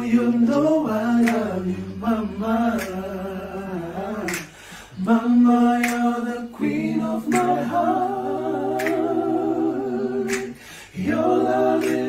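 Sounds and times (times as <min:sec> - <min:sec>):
unaccompanied voices singing: 0:00.0 - 0:12.0.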